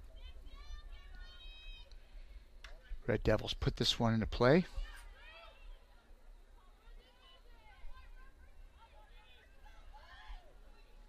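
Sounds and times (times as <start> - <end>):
low rumble of outdoor noise: 0.0 - 11.0.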